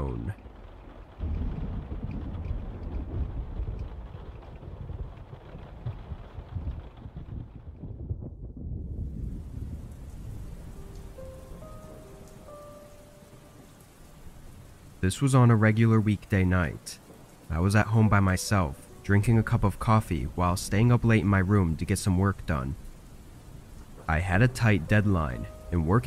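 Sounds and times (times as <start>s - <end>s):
rumbling thunder: 0.0s - 15.0s
steady rain: 0.0s - 26.0s.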